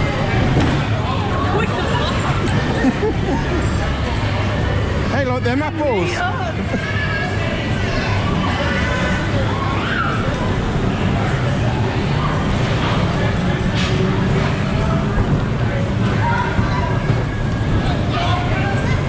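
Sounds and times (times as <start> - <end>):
dodgem cars rumbling: 0.0 - 19.0.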